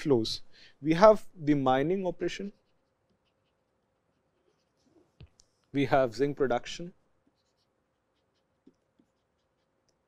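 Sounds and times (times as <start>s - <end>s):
man speaking: 0.0s - 2.6s, 5.8s - 7.0s
stylus tapping and scratching: 2.4s - 5.8s, 7.2s - 10.0s.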